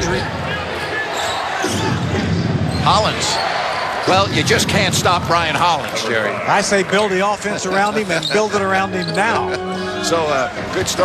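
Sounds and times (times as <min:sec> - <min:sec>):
basketball game sounds: 0:00.0 - 0:09.5, 0:10.5 - 0:11.0
crowd noise: 0:00.0 - 0:11.0.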